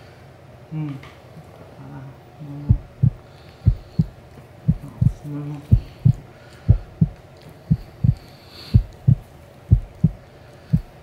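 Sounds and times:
heartbeat thumps: 2.7s - 11.0s.

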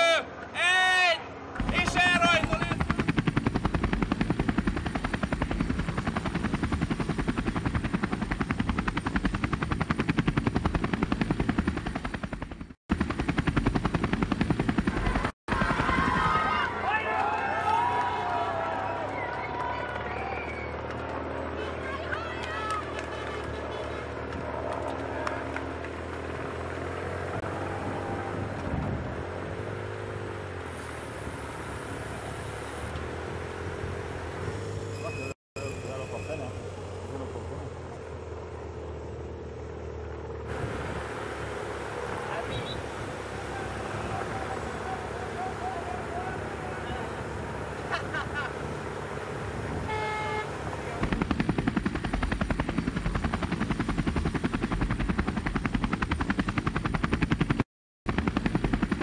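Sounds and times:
people shouting and cheering: 0.0s - 2.9s, 15.0s - 25.6s
motor vehicle engines running: 1.3s - 59.0s
helicopter rotor chopping: 1.5s - 18.0s, 20.8s - 28.6s, 35.7s - 59.0s.

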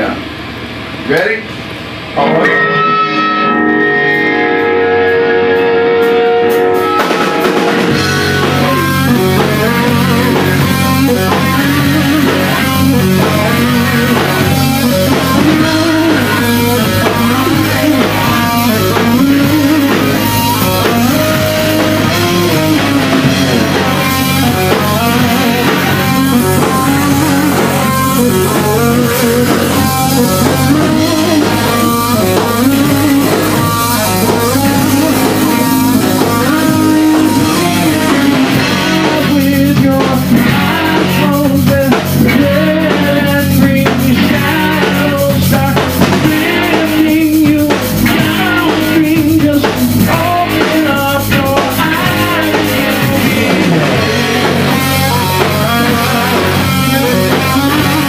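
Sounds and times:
rock band playing: 0.0s - 58.0s.

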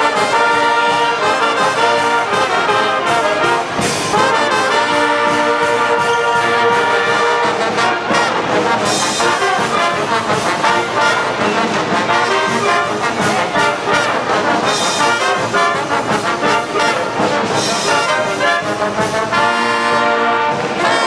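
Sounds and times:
marching band brass playing: 0.0s - 21.0s.

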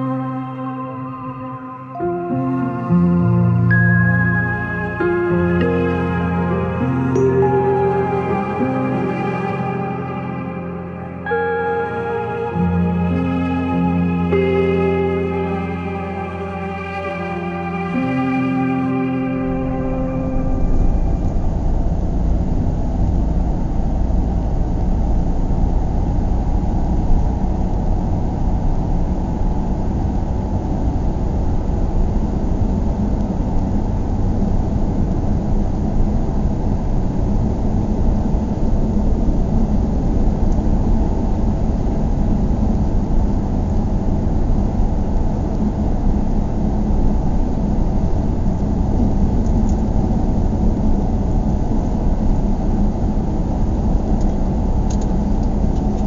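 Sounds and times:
car engine and tyre rumble: 20.6s - 56.0s.

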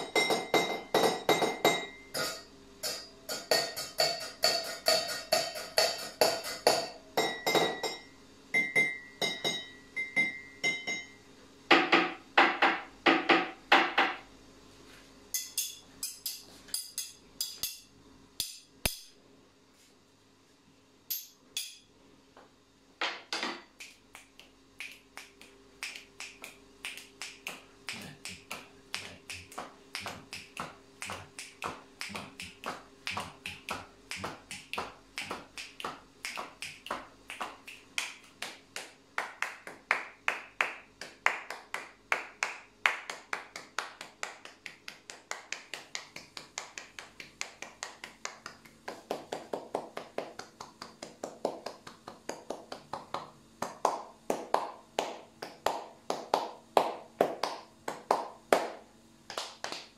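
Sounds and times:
clinks and knocks on cup: 0.0s - 11.2s
hand claps: 23.8s - 59.9s.

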